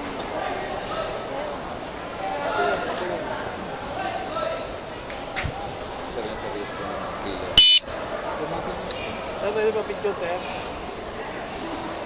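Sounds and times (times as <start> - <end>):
murmur of voices: 0.0 - 12.0
street noise: 4.6 - 12.0
short electronic beep: 7.6 - 7.8.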